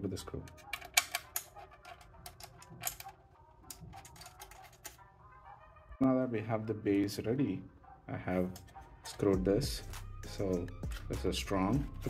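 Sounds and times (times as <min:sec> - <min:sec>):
screw clicking into metal plate: 0:00.5 - 0:03.1.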